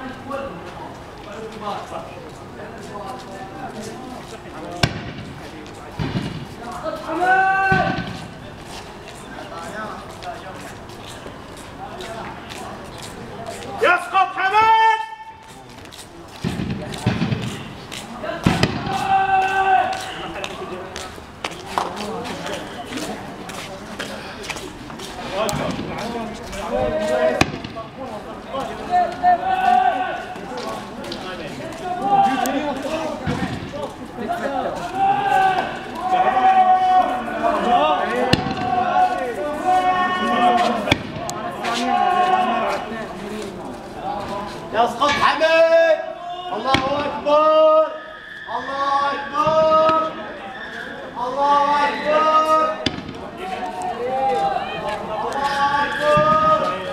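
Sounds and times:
sharp knocks and bangs: 0:06.0 - 0:06.5
men calling out drawn-out cries: 0:18.8 - 0:20.4, 0:28.8 - 0:30.4, 0:31.7 - 0:33.0, 0:34.2 - 0:42.9.

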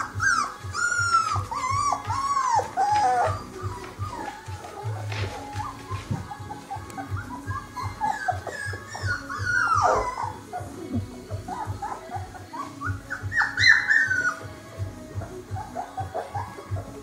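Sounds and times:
background music with steady beat: 0:00.0 - 0:17.0
puppies whining and yelping: 0:00.0 - 0:17.0.

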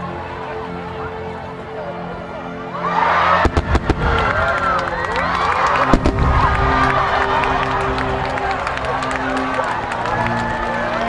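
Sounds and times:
crowd voices: 0:00.0 - 0:11.0
music: 0:00.0 - 0:11.0
fireworks bangs and crackles: 0:03.4 - 0:05.0, 0:05.7 - 0:07.6.

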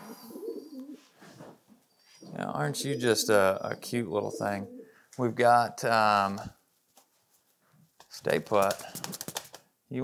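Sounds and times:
pigeons cooing: 0:00.0 - 0:01.1, 0:02.2 - 0:05.0.

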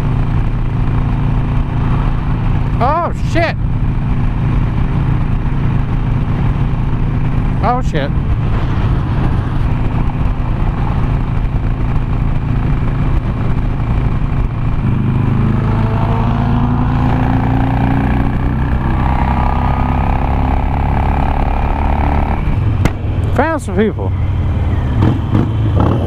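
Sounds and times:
motorcycle engine running: 0:00.0 - 0:26.0
wind noise: 0:03.7 - 0:23.3.

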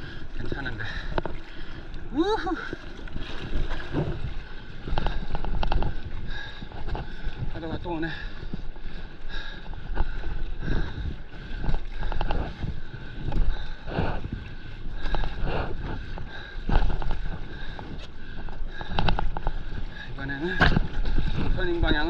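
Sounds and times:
water sloshing and splashing: 0:00.0 - 0:22.0
wind buffeting microphone: 0:00.0 - 0:22.0.

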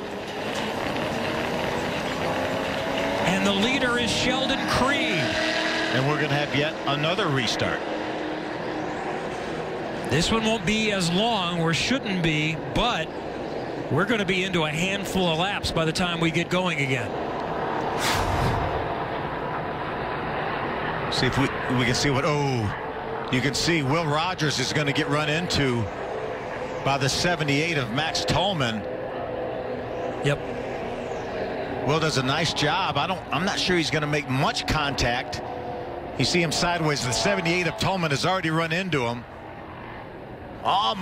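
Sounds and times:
race car engine drone: 0:00.0 - 0:41.0
rushing haze: 0:17.9 - 0:19.0
whoosh: 0:17.9 - 0:19.0.

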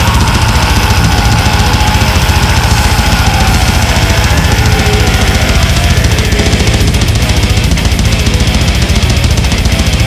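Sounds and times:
death metal playing: 0:00.0 - 0:10.0.

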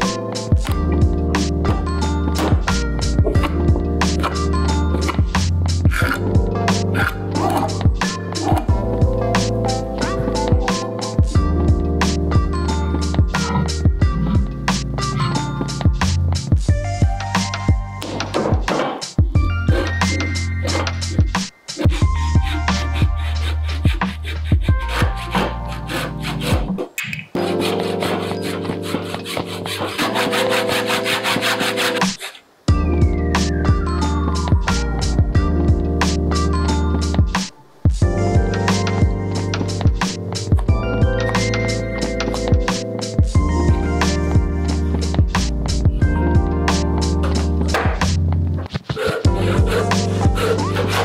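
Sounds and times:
background music with sustained tones: 0:00.0 - 0:26.8, 0:27.4 - 0:51.0
drum strokes: 0:00.0 - 0:36.2, 0:37.0 - 0:51.0
handsaw cutting wood: 0:19.7 - 0:26.8, 0:27.4 - 0:32.4, 0:49.0 - 0:51.0.

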